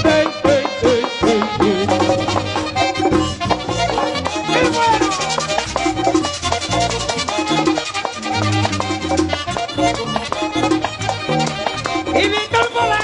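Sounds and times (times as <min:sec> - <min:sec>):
button accordion: 0:00.0 - 0:13.0
fast percussion beat: 0:00.0 - 0:13.0
horns: 0:00.0 - 0:13.0.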